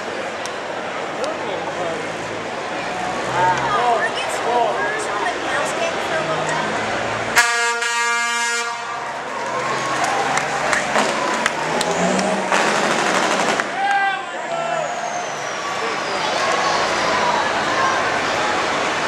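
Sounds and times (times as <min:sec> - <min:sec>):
crowd chatter: 0:00.0 - 0:19.0
truck air horn blast: 0:07.4 - 0:09.0.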